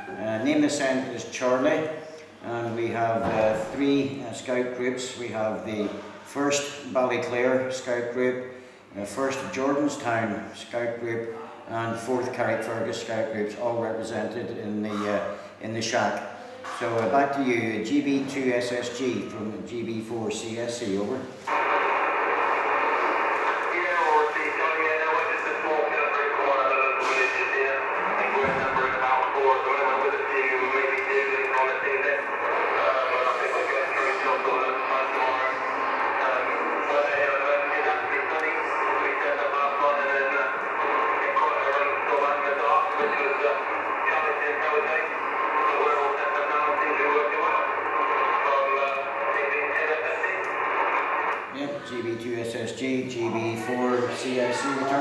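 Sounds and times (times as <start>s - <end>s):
radio static noise: 21.3s - 55.0s
radio voice over loudspeaker: 21.3s - 55.0s
person speaking: 23.6s - 55.0s.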